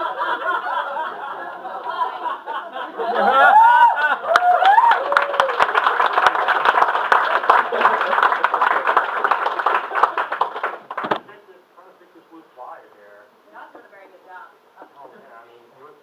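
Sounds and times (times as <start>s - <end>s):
audience clapping: 4.0s - 11.2s.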